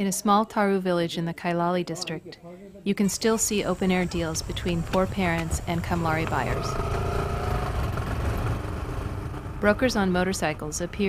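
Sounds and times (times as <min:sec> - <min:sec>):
small motorcycle engine passing: 0:04.0 - 0:11.0.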